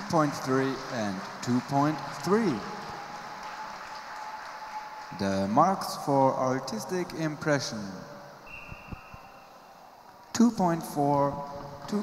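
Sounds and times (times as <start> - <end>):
light applause: 0.0 - 7.5.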